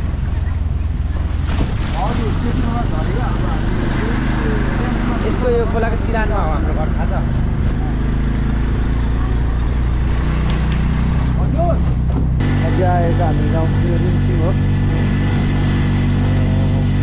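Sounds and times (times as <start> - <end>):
vehicle engine humming: 0.0 - 17.0
voices talking: 0.0 - 17.0.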